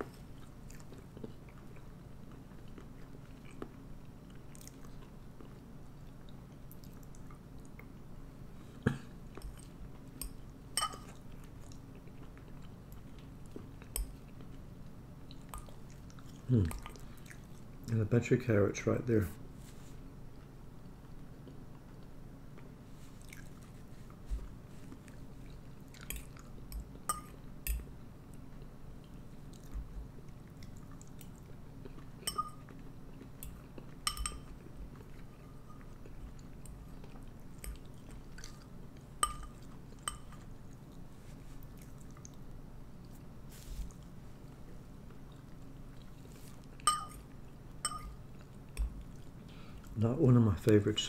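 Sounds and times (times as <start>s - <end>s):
quiet chewing: 0.0s - 18.0s, 19.7s - 50.0s
spoon clinking on ceramic bowl: 10.8s - 11.1s, 32.3s - 32.6s, 34.0s - 34.5s, 39.2s - 40.4s, 46.8s - 47.2s, 47.8s - 48.2s.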